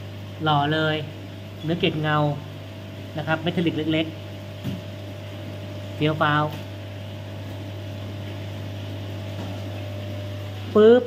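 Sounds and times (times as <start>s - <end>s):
aquarium pumps humming: 0.0s - 11.0s.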